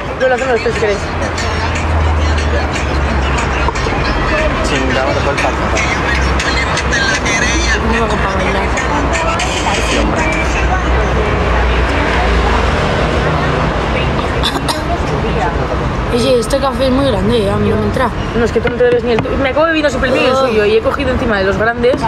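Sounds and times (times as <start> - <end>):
indistinct voices: 0.0 - 22.0
traffic engine rumble: 0.0 - 22.0.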